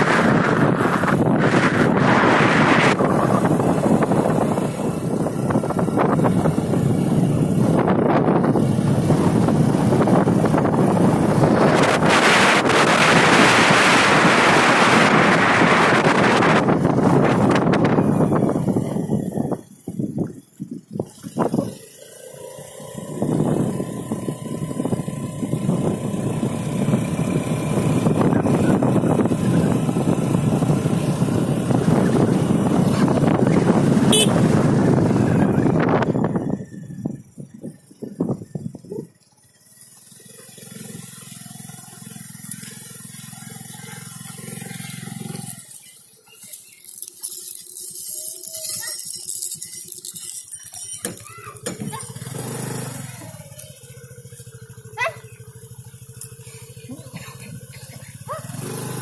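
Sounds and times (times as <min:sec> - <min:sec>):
wind rushing over microphone: 0:00.0 - 0:21.8, 0:23.1 - 0:39.2
motorbike engine drone: 0:00.0 - 0:59.0.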